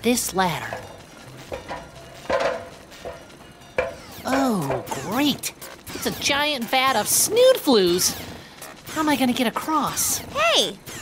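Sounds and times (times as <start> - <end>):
knocks: 0.7 - 5.0.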